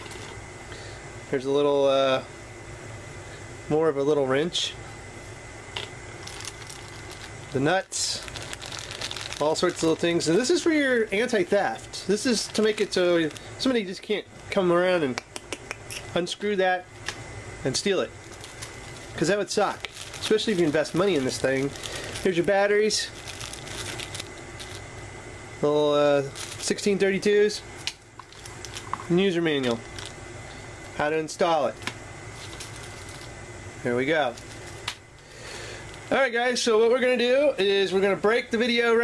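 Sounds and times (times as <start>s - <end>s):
plastic bag crinkling: 0.0s - 0.3s, 6.2s - 14.6s, 17.8s - 25.0s, 26.2s - 30.2s, 32.3s - 33.4s, 34.2s - 35.3s
background hum: 0.0s - 39.0s.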